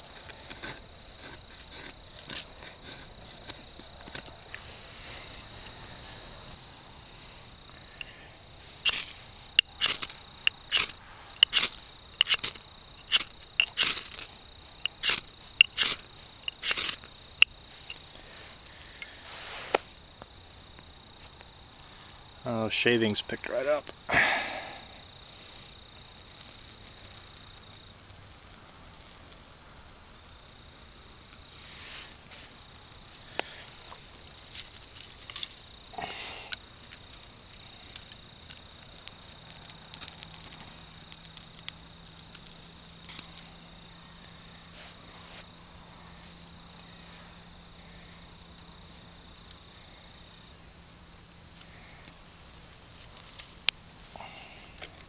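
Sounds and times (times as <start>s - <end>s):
knife scraping ferro rod: 0.0s - 4.3s, 8.8s - 18.0s
burning twigs snapping: 0.0s - 4.7s, 7.7s - 18.0s, 33.3s - 43.6s
crickets chirping: 0.0s - 55.0s.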